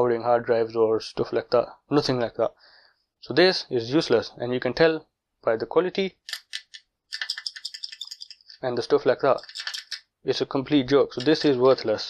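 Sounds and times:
plastic adapter clicking and rattling: 9.4s - 10.0s.

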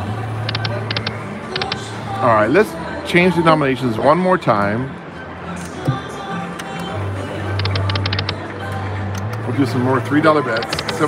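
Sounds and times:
slot machine electronic music: 0.0s - 2.4s, 7.4s - 8.6s, 9.2s - 11.0s
high electronic ticks: 0.4s - 1.9s, 7.6s - 8.4s, 10.5s - 11.0s.

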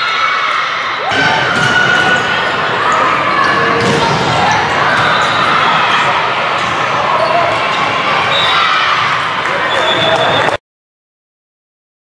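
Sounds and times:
voices echoing in a gym: 0.0s - 10.6s
volleyball hits: 1.1s - 2.4s.

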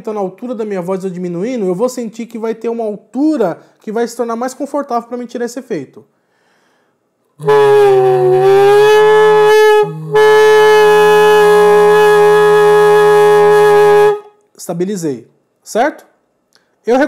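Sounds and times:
raspy saxophone mouthpiece growl: 7.4s - 14.2s.

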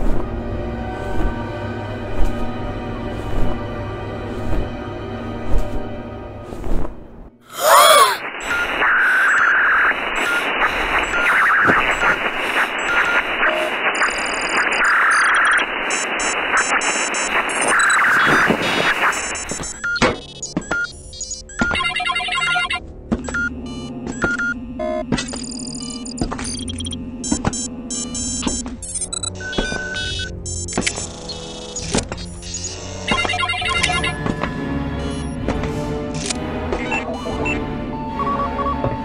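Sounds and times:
low droning music: 0.0s - 7.4s.

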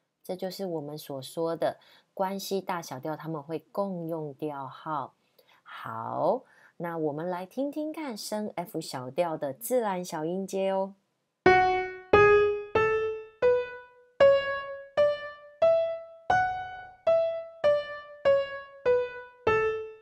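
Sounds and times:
keyboard playing a scale: 11.5s - 20.0s.

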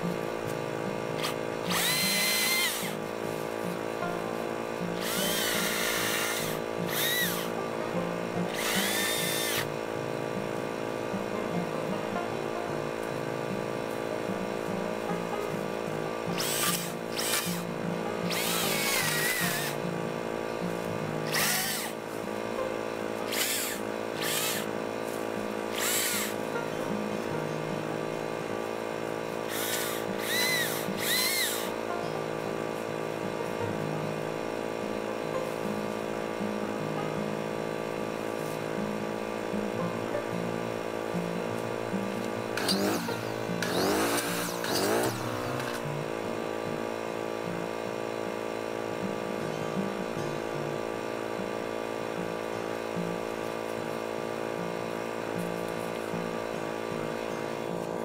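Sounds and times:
chainsaw bursts: 1.2s - 3.0s, 5.0s - 7.6s, 8.5s - 9.7s, 16.3s - 17.7s, 18.3s - 19.8s, 21.2s - 22.0s, 23.3s - 24.7s, 25.6s - 26.5s, 29.4s - 31.8s, 42.5s - 45.9s
circular saw whirring and cutting: 1.2s - 3.0s, 4.9s - 7.6s, 8.2s - 9.8s, 16.2s - 19.9s, 21.2s - 22.0s, 23.2s - 26.7s, 29.3s - 31.9s, 42.5s - 46.0s.

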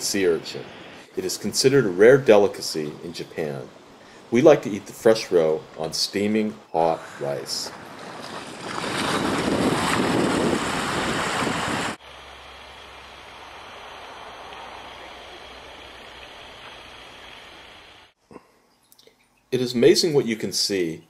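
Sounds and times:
outdoor hiss: 0.0s - 7.8s, 10.8s - 18.4s
ocean surf on rocky shore: 7.2s - 18.1s.

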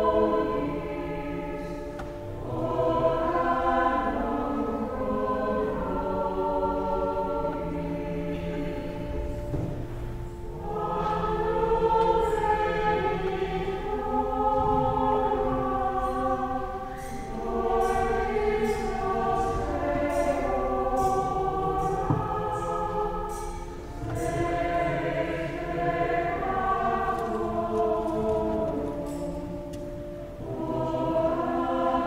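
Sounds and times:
choir singing: 0.0s - 32.0s.

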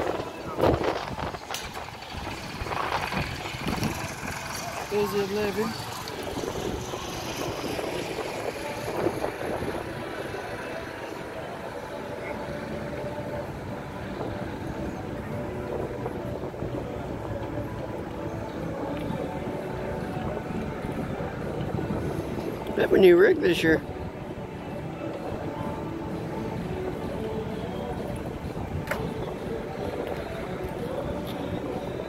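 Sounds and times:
faint indistinct voices: 0.0s - 32.0s
outdoor background noise: 0.0s - 32.0s.

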